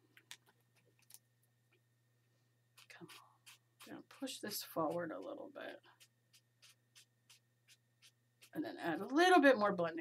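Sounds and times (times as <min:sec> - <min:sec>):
paintbrush scratching on paper: 0:02.8 - 0:09.0.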